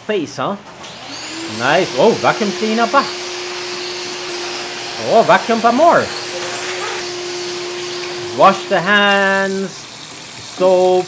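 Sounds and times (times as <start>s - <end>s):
vacuum cleaner running: 0.6s - 11.0s.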